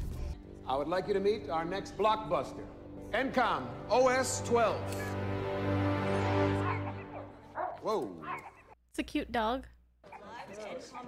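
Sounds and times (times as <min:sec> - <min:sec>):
dog yipping: 0:06.6 - 0:08.8.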